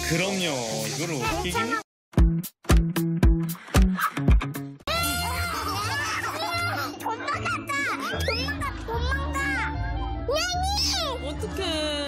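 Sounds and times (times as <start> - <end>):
background music with bass line: 2.1 - 4.9
children squealing: 4.9 - 7.0.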